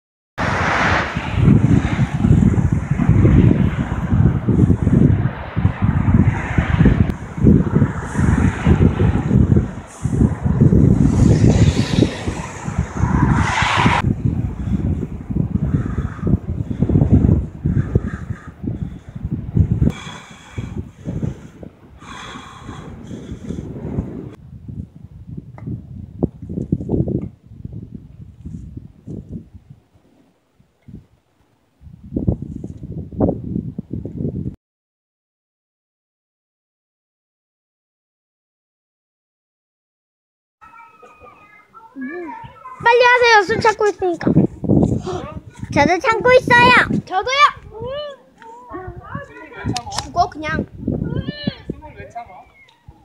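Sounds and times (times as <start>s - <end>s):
cars passing: 0.4s - 18.0s
wind on microphone: 0.4s - 34.6s, 42.0s - 53.0s.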